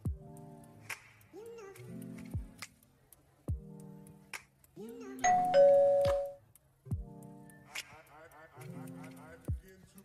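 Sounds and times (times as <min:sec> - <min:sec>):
background music with kick drum: 0:00.0 - 0:10.0
ding-dong doorbell chime: 0:05.2 - 0:06.4.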